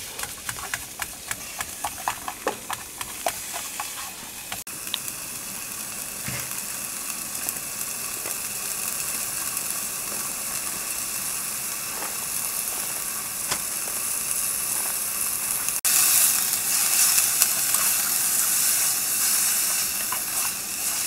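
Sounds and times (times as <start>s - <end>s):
beef sizzling in a frying pan: 0.0s - 21.0s.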